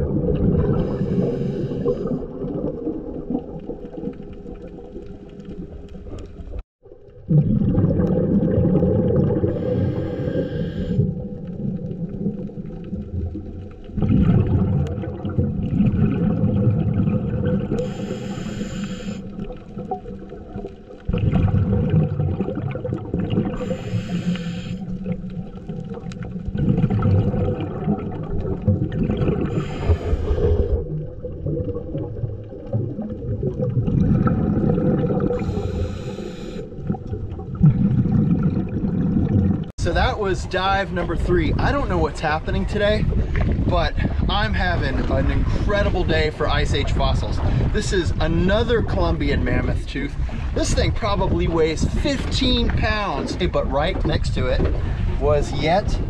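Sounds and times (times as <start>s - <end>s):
bubbling exhale: 0.0s - 3.6s, 7.3s - 13.3s, 13.9s - 20.5s, 21.1s - 39.7s, 47.4s - 47.8s
regulator hissing inhale: 0.8s - 2.2s, 9.5s - 11.1s, 17.8s - 19.4s, 23.6s - 25.0s, 29.5s - 30.8s, 35.4s - 36.8s.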